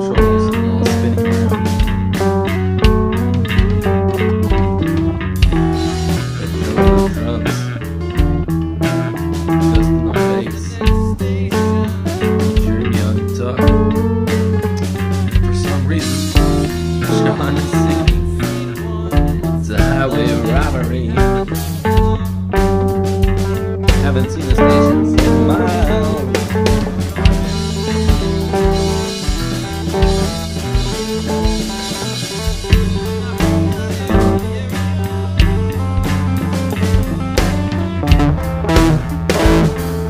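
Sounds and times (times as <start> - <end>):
bass guitar: 0.0 - 40.0
drums: 0.0 - 40.0
guitars: 0.0 - 40.0.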